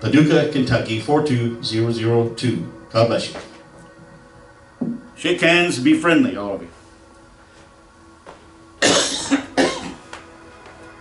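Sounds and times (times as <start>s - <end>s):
person coughing: 8.8s - 10.1s.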